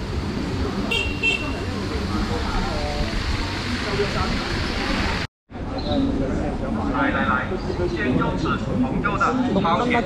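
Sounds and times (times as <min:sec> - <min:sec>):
street noise: 0:00.0 - 0:10.0
vehicle horn beeps: 0:00.9 - 0:01.7.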